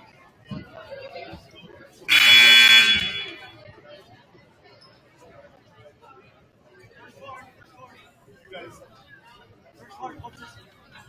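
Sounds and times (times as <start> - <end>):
scoreboard buzzer: 2.1 - 3.5.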